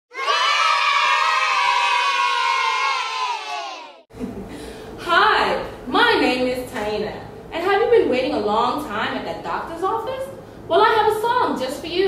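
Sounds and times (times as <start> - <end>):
children cheering: 0.1 - 4.0.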